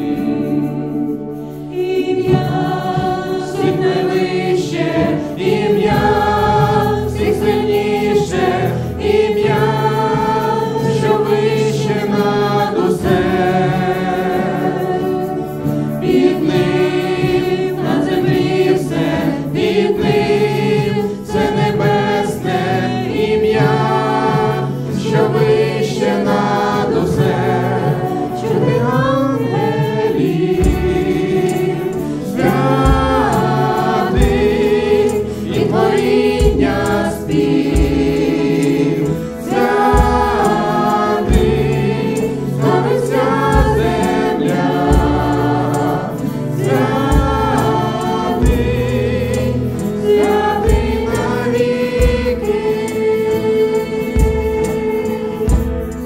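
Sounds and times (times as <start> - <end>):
acoustic guitar: 0.0 - 56.0
keyboard: 0.0 - 56.0
people singing into microphones: 0.0 - 56.0
low drum beats: 26.8 - 53.4, 54.0 - 56.0.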